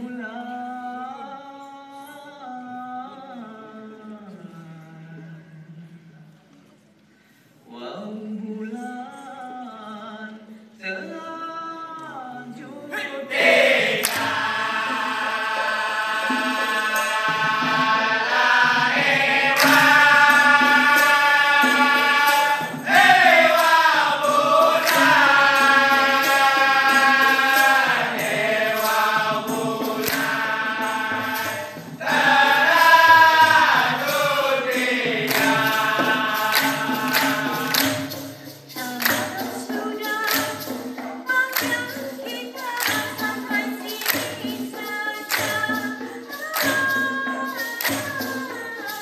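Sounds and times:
chorus chanting in unison: 12.9s - 38.2s
hand claps: 13.7s - 15.0s, 18.5s - 49.0s.

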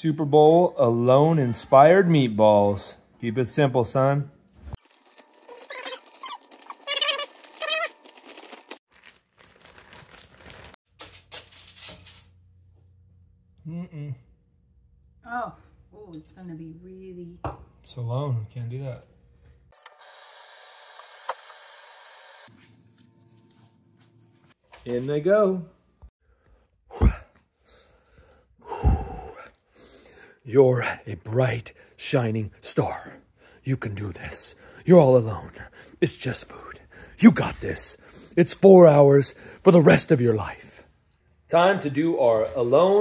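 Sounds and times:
kneading meat in plastic bag: 4.8s - 10.8s
aluminium foil crinkling: 4.8s - 12.3s
man breathing out hard: 26.9s - 30.4s.

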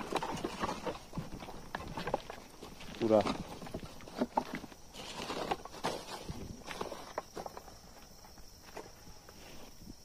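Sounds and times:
knocks and crunches of debris: 0.0s - 7.8s
footsteps on rubble: 0.0s - 9.1s.

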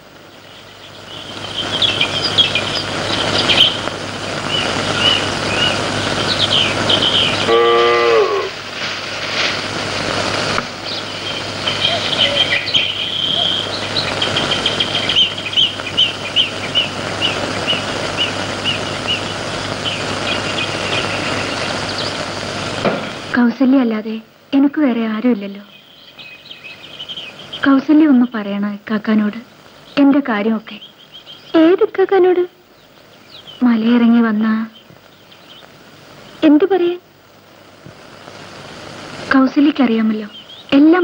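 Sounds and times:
steady rushing noise: 0.0s - 23.6s
birds chirping: 0.0s - 41.0s
cow lowing: 7.5s - 8.6s.

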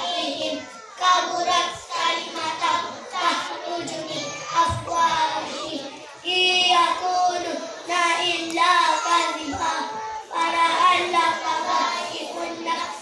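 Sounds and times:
children singing in unison: 0.0s - 13.0s.

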